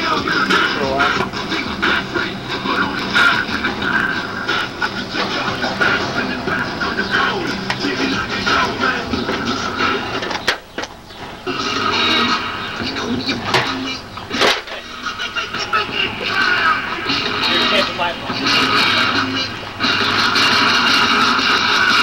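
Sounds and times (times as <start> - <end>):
loud music with voice: 0.0 - 22.0.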